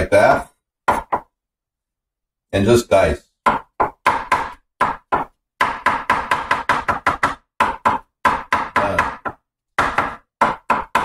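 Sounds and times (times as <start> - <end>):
cleaver knocking on cutting board: 3.4 - 11.0.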